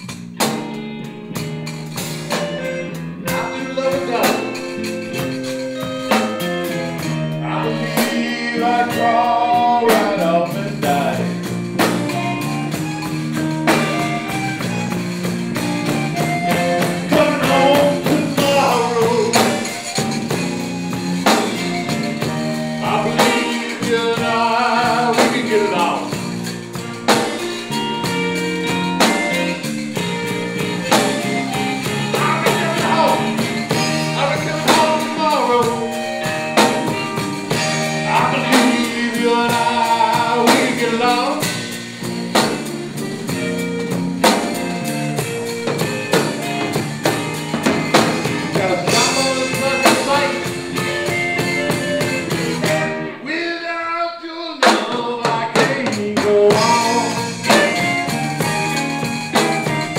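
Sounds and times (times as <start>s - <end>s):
live band playing: 0.0s - 59.9s
man singing: 2.4s - 5.9s, 6.6s - 11.5s, 16.5s - 20.0s, 22.6s - 26.3s, 30.8s - 41.8s, 48.3s - 50.8s, 52.6s - 58.2s.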